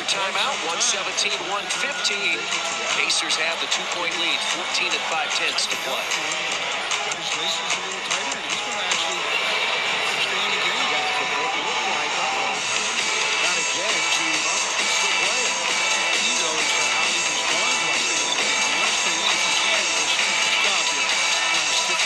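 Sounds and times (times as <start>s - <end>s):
arena music playing loudly: 0.0s - 22.0s
basketball crowd noise: 0.0s - 22.0s.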